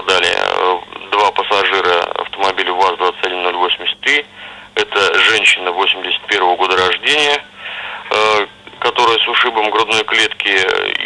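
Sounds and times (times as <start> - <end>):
man speaking over telephone: 0.0 - 11.0.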